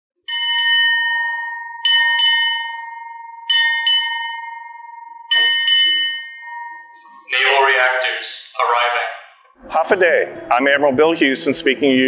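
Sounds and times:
ship's bell ringing: 0:00.3 - 0:08.2.

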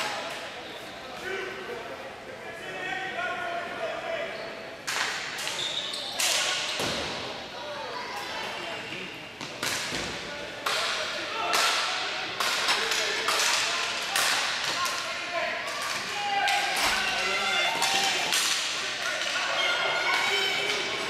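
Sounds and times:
players shouting: 0:13.0 - 0:21.0.

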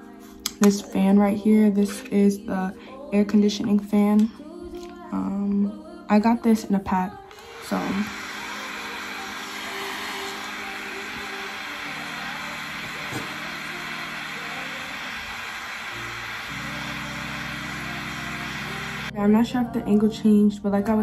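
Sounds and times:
small fan whirring: 0:07.2 - 0:19.1.

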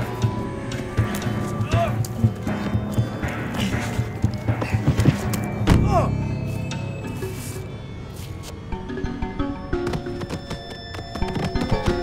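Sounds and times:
film music: 0:00.0 - 0:12.0.

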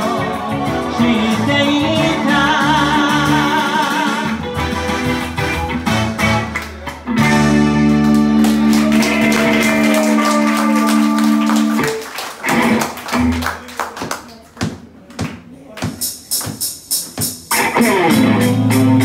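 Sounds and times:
picked guitar notes and taps: 0:04.3 - 0:09.6, 0:15.8 - 0:19.0
electric guitar chord ringing: 0:17.6 - 0:19.0.

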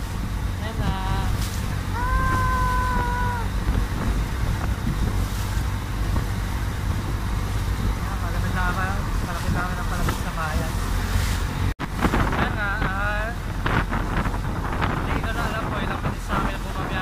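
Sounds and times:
boat engine rumbling: 0:00.0 - 0:17.0
water and wind rushing: 0:00.0 - 0:17.0.

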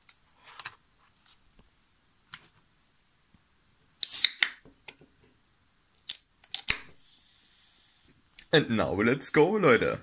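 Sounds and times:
can tab cracking open: 0:04.0 - 0:04.6.

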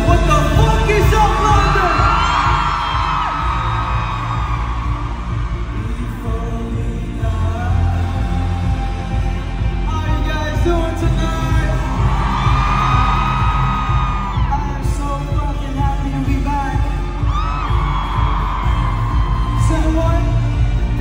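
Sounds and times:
heavy bass beat: 0:00.0 - 0:21.0.

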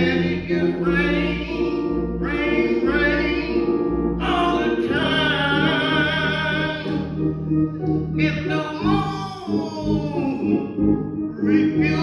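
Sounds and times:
men's gospel ensemble singing: 0:00.0 - 0:07.4, 0:08.1 - 0:12.0
instrumental accompaniment: 0:00.0 - 0:12.0.

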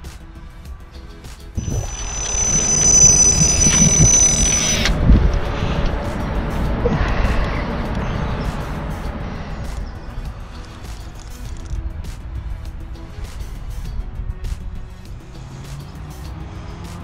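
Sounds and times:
bite alarm high tone: 0:01.6 - 0:07.3
heavy rumbling wind: 0:01.6 - 0:15.3.

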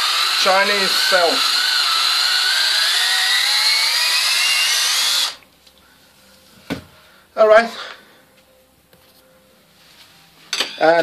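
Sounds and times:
cordless drill boring into wood: 0:00.0 - 0:05.4.

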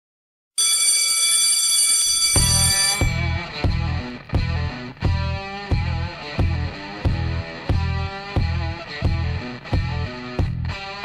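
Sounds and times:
loud steady ringing tone: 0:00.6 - 0:03.3.

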